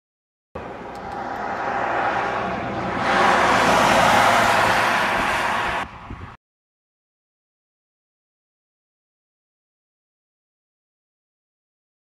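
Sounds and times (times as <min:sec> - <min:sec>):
vehicle passing on highway: 0:00.6 - 0:06.4.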